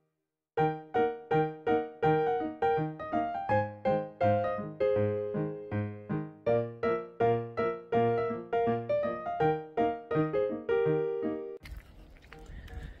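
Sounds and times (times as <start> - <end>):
keyboard melody: 0.6 - 11.6.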